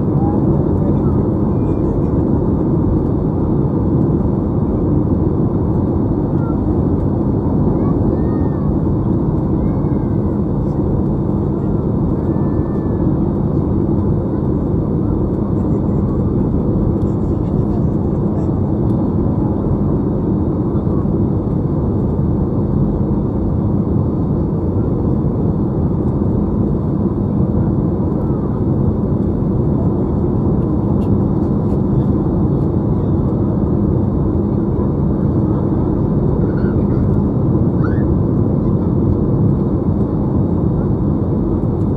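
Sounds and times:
jet airliner cabin noise: 0.0 - 41.9.

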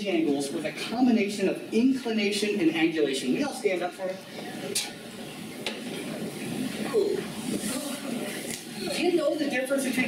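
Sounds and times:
rustle and shuffle of audience: 4.3 - 9.2.

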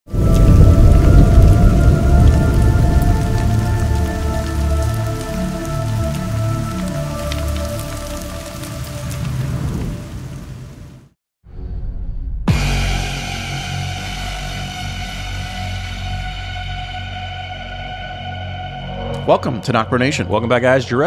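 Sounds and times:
heavy low rumble: 0.1 - 8.1
crackling rain-like hiss: 0.1 - 11.2
sustained drone chord: 12.5 - 21.0.

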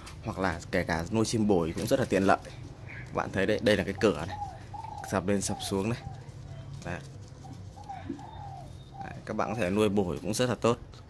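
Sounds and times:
dove cooing: 1.8 - 10.0.

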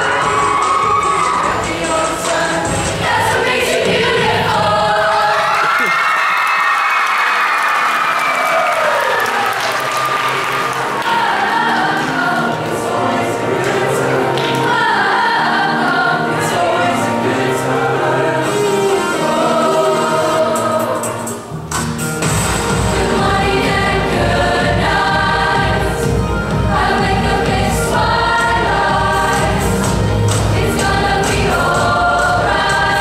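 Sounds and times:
choir singing in harmony: 0.0 - 5.9, 9.8 - 21.6, 22.2 - 33.0.

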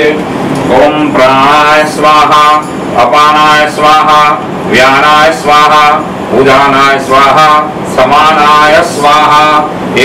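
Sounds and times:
priest chanting mantras: 0.0 - 10.0.

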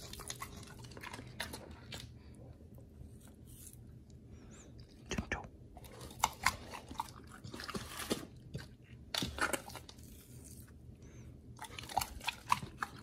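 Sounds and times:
dog chewing and crunching food: 0.0 - 4.0, 4.8 - 13.0.

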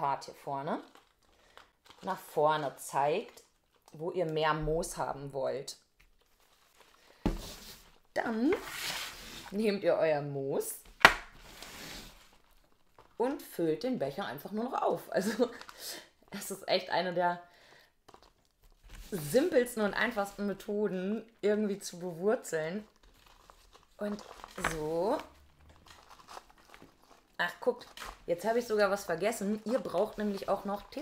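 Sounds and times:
soft crackles: 0.4 - 9.6, 10.8 - 13.5, 18.0 - 31.0
moss crinkling and rustling: 6.0 - 9.6, 11.3 - 13.2, 22.8 - 31.0.

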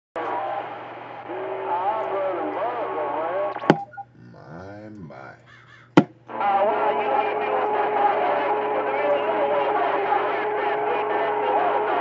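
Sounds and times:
drawn-out vocal call over radio: 1.2 - 12.0
steady radio tone: 1.3 - 12.0
distorted voice over radio speaker: 1.6 - 12.0
radio transmission click: 3.5 - 4.2.

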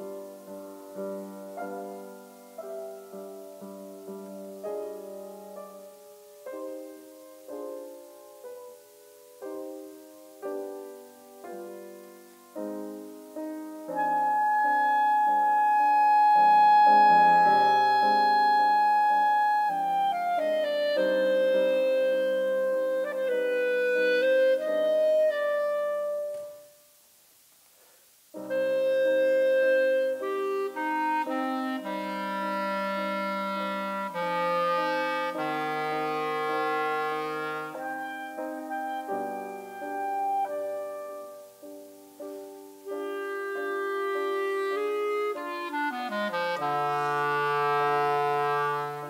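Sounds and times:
clarinet: 0.0 - 27.2, 27.8 - 49.0
piano: 0.0 - 49.0.

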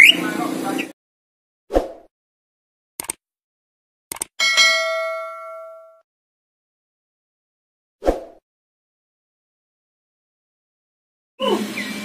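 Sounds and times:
bright bell ding: 4.4 - 6.0.

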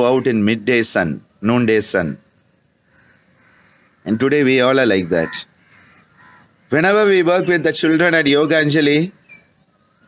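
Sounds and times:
faint bird call: 2.7 - 7.9, 9.1 - 10.0.

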